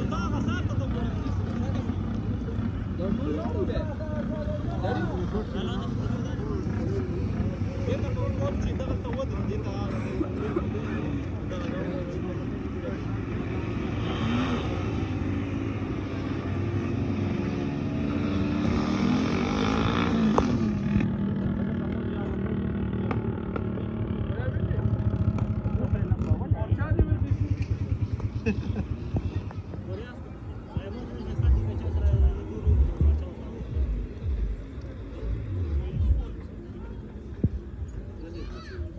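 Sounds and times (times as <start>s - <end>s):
vehicle engines passing: 0.0s - 38.9s.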